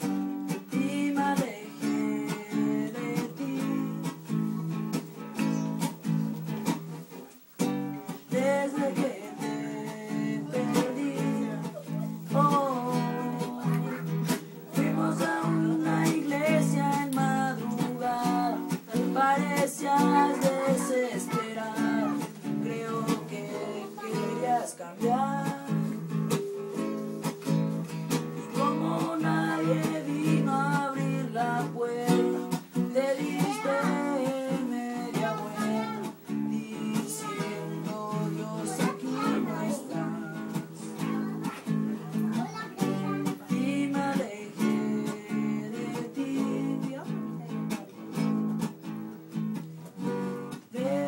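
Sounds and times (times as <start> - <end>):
person singing: 0.0 - 48.0, 50.0 - 51.0
nylon-string guitar strumming: 0.0 - 51.0.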